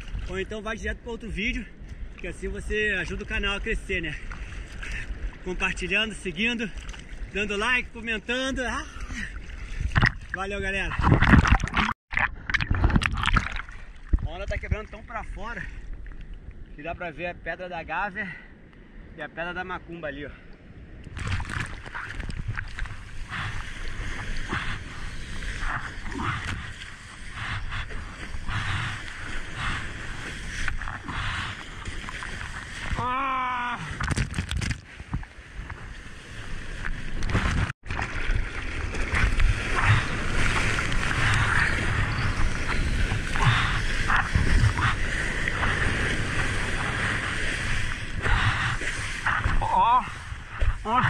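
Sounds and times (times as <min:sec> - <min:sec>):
water rushing and splashing: 0:08.6 - 0:16.3, 0:21.0 - 0:51.0.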